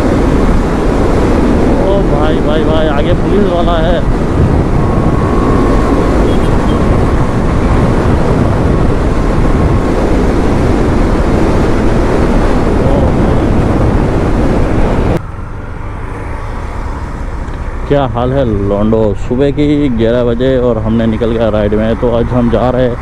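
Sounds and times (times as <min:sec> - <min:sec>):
motorcycle wind and road noise: 0:00.0 - 0:23.0.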